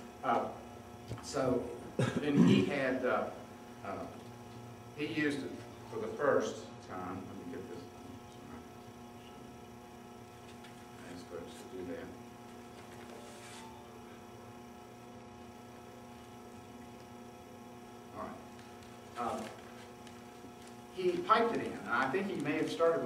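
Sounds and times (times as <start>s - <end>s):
electrical mains hum: 0.0s - 23.0s.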